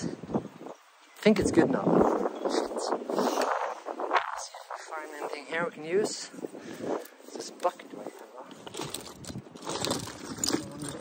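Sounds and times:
broken glass rattling in bucket: 8.7s - 11.0s.

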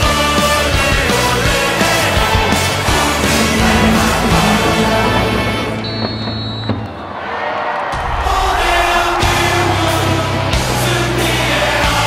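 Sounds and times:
background music: 0.0s - 7.0s, 7.9s - 12.0s.

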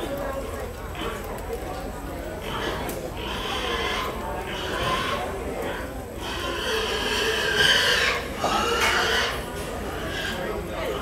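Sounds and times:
pig squealing: 2.4s - 11.0s.

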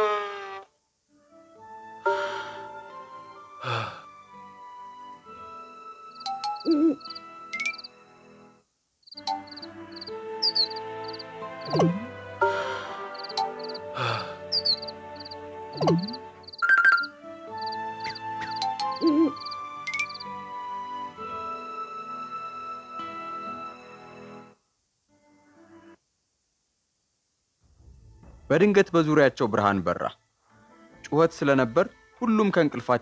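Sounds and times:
soft background music: 0.0s - 26.0s, 27.6s - 33.0s
short high chirps: 6.3s - 7.9s
cartoon owl hooting: 6.4s - 7.9s, 9.2s - 12.1s, 13.0s - 20.3s.

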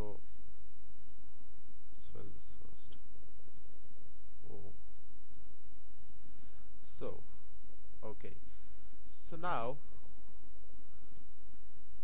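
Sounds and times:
steady low hum: 0.0s - 12.0s
computer mouse clicks: 4.9s - 6.2s.

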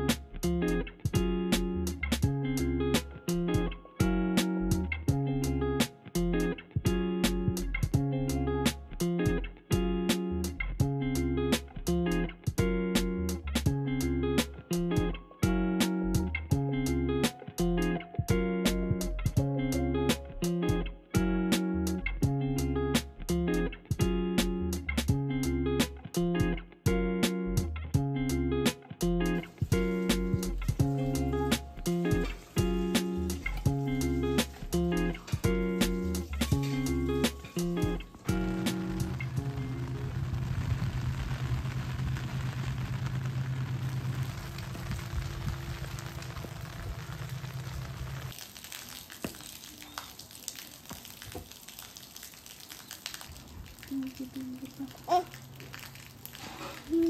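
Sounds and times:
plucked music: 0.0s - 40.5s
rain hissing: 29.4s - 57.0s.

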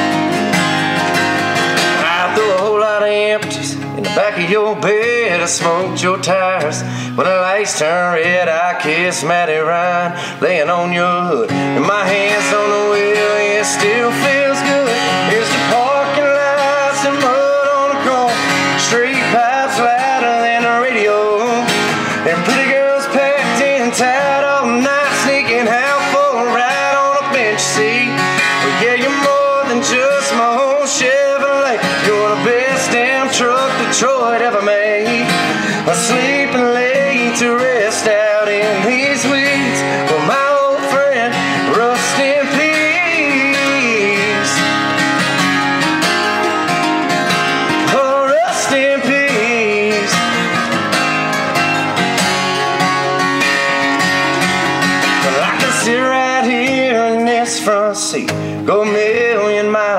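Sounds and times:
guitar with bending notes: 0.0s - 59.9s.

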